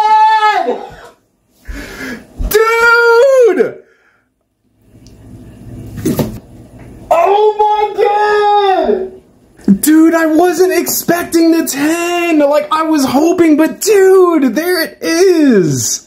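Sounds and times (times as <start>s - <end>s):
man's high-pitched excited cries: 0.0s - 1.1s, 2.4s - 3.8s, 7.1s - 9.2s, 11.4s - 16.0s.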